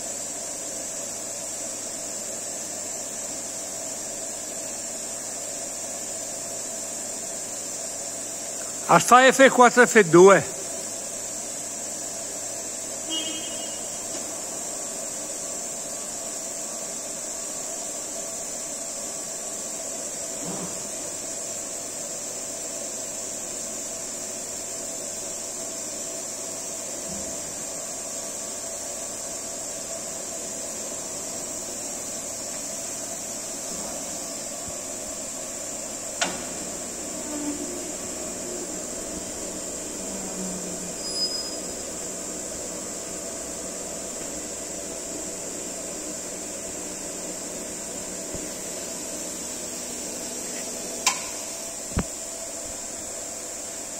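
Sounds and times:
woodworking machine hum and whine: 0.0s - 53.9s
sharp click: 51.0s - 52.1s.

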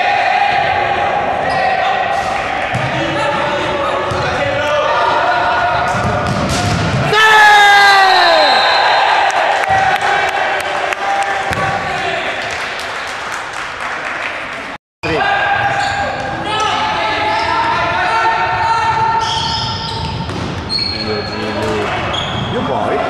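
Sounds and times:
people shouting: 0.0s - 6.2s, 7.0s - 12.2s.

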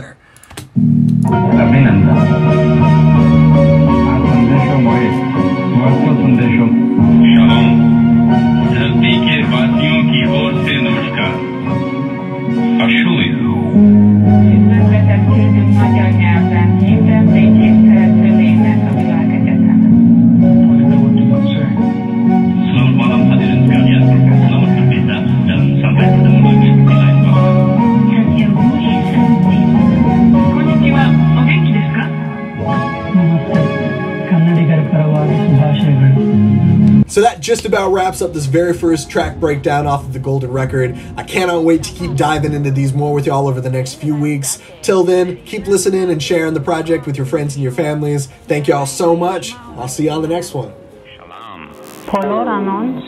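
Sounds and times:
electric piano bass: 0.7s - 44.1s
sustained bass notes: 0.7s - 47.8s, 49.6s - 53.0s
spacey synth: 50.8s - 53.0s
glitchy vocal samples: 51.0s - 53.0s.

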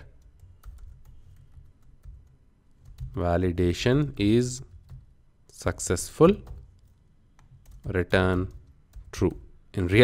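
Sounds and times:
computer keyboard keystrokes: 0.1s - 3.2s, 4.7s - 5.1s, 6.4s - 9.1s.

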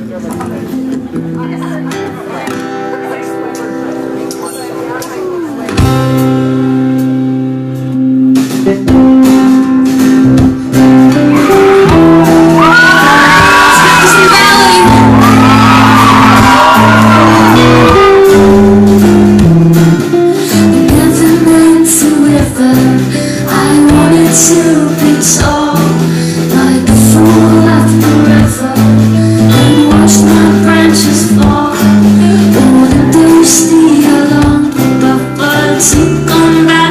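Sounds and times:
live band playing: 0.0s - 36.9s
audience cheering and shouting: 11.1s - 19.0s.

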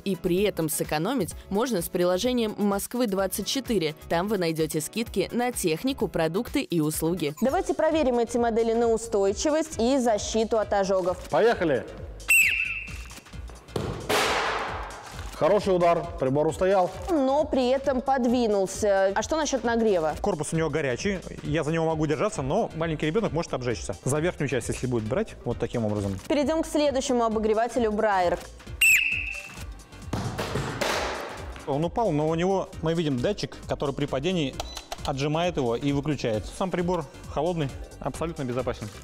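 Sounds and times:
background music: 0.0s - 39.0s
whistle blast: 12.3s - 13.2s, 28.8s - 29.7s
ball being kicked: 13.7s - 15.0s, 29.0s - 31.7s
heater being struck: 13.8s - 15.1s.

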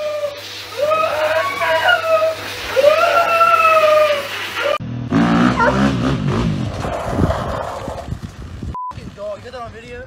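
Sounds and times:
wavering animal call: 0.0s - 4.8s
dirt bike engine revving: 4.8s - 8.1s.

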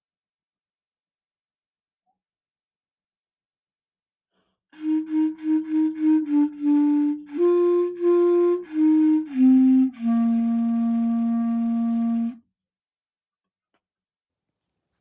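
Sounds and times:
solo clarinet melody: 4.8s - 12.4s.

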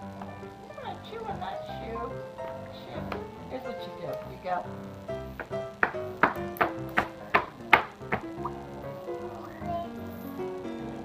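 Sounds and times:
background music with simple melody: 0.0s - 11.0s
shoes clapped together: 5.4s - 8.4s.

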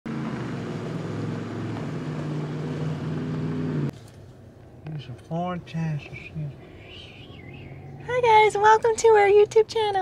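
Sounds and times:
vehicle engine running: 0.1s - 3.9s.

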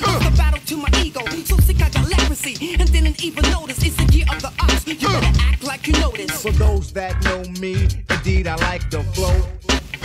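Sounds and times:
heavy repeating bass line: 0.0s - 10.0s
rapping over a beat: 0.0s - 10.0s.

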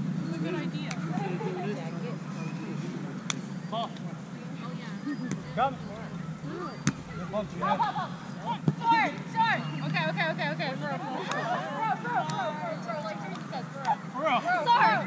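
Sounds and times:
players calling and chatting: 0.0s - 15.0s
steady low hum: 0.0s - 15.0s
sharp slaps: 3.2s - 3.5s.

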